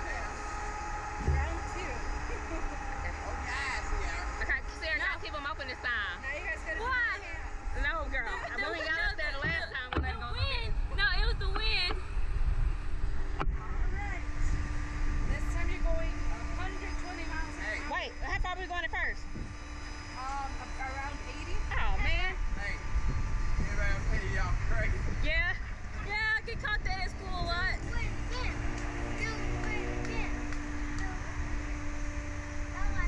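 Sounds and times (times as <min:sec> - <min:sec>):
low rumble: 0:00.0 - 0:33.0
steady hum: 0:00.0 - 0:33.0.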